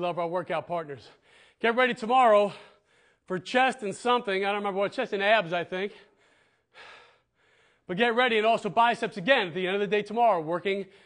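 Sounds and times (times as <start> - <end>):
man speaking: 0.0 - 6.1, 7.9 - 10.9.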